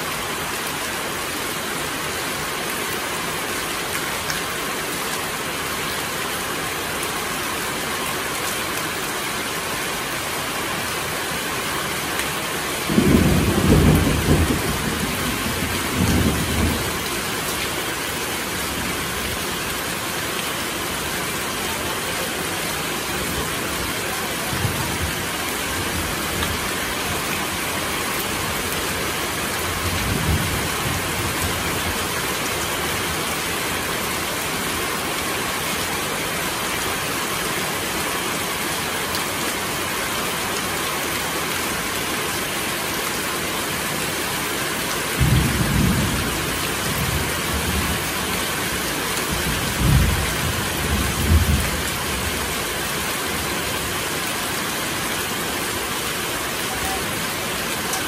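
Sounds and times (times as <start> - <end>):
heavy rain on leaves and roofing: 0.0 - 58.0
water streaming off roof: 0.0 - 58.0.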